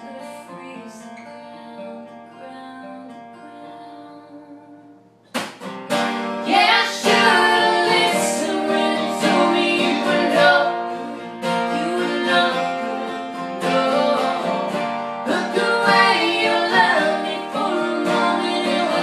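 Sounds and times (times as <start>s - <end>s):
woman singing: 0.0s - 5.0s, 6.5s - 19.0s
acoustic guitars strumming: 0.0s - 19.0s.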